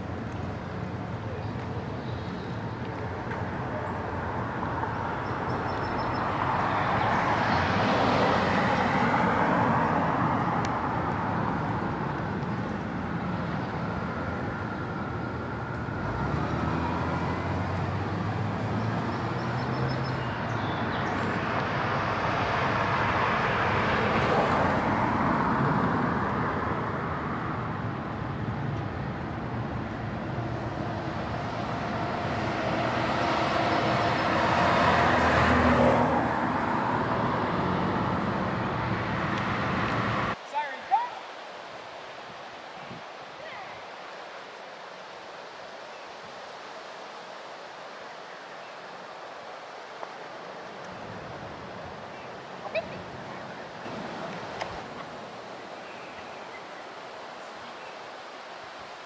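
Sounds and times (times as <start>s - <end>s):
cars passing on road: 0.0s - 43.3s, 43.9s - 59.0s.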